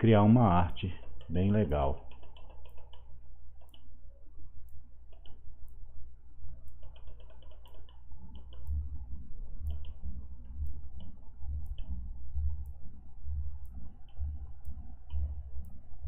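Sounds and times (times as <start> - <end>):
low steady hum: 0.0 - 16.0
computer mouse buttons clicking: 1.0 - 3.9, 4.6 - 5.8, 6.6 - 8.9, 9.6 - 12.0
dull low thumps: 8.6 - 16.0.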